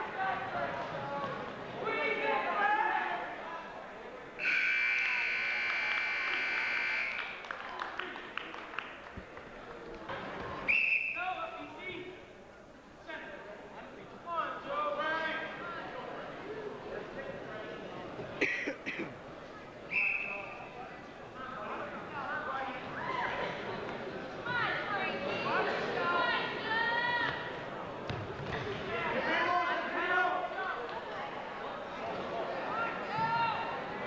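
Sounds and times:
referee's whistle blast: 4.4s - 7.2s, 10.7s - 11.2s, 19.9s - 20.6s
scoreboard buzzer steady tone: 4.4s - 7.2s.

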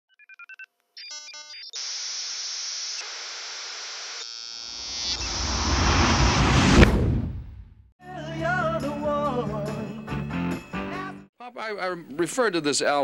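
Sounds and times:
rising rush of noise: 4.8s - 7.7s.

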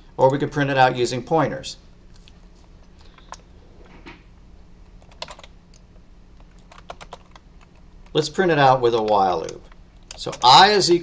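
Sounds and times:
faint low hum: 0.0s - 11.0s
keyboard keys clicking: 5.0s - 5.8s, 6.4s - 8.2s, 8.9s - 10.6s.

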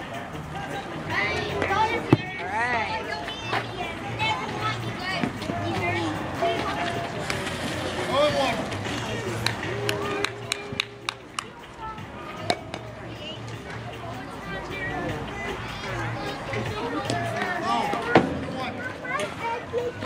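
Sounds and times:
sharp hand claps: 9.4s - 11.6s.

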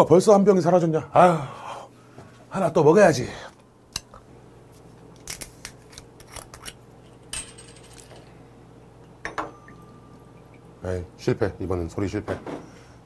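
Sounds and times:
glass bottle clinking: 9.0s - 10.7s
metal cup ringing: 9.2s - 10.6s.

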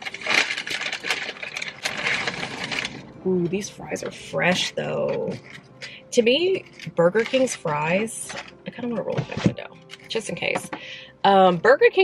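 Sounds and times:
paper packaging rustling and crinkling: 0.0s - 6.0s, 6.6s - 11.0s.

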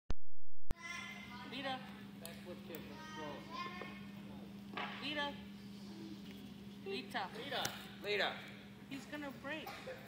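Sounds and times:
steady low hum: 0.7s - 10.0s.

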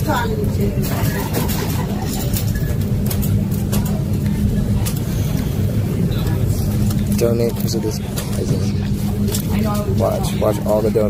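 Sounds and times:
shopping cart rolling: 0.0s - 11.0s.

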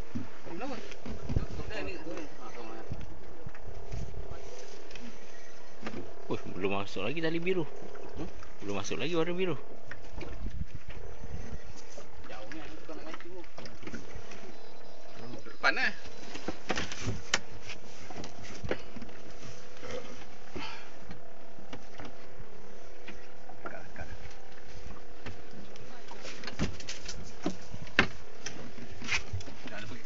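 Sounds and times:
boat engine running: 0.0s - 30.0s.

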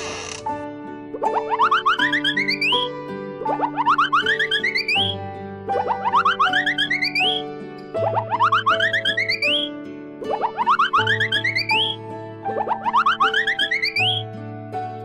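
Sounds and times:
cheerful children's music: 1.0s - 15.0s
cartoon rising pitch sweeps: 1.2s - 5.2s, 5.8s - 7.4s, 8.0s - 9.7s, 10.3s - 12.0s, 12.6s - 14.2s.

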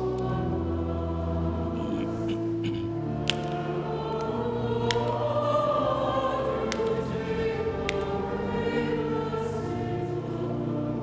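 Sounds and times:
church choir singing: 0.0s - 11.0s
sharp clicks: 3.2s - 3.6s.

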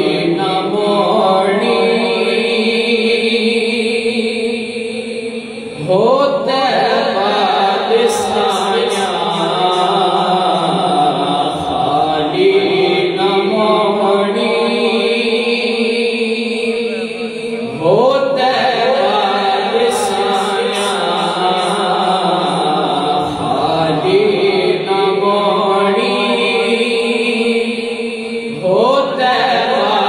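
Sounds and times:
man reciting unaccompanied: 0.0s - 4.0s, 5.8s - 30.0s.

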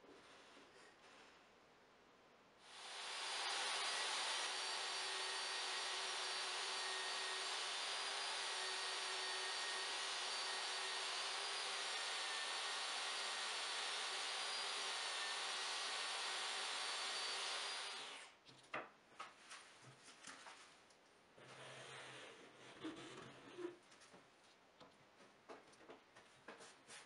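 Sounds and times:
table saw cutting: 2.7s - 18.3s.

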